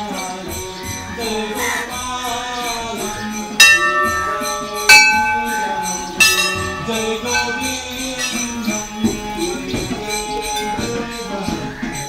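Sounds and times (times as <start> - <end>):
music: 0.0 - 12.0
bell strikes ringing: 3.6 - 11.0.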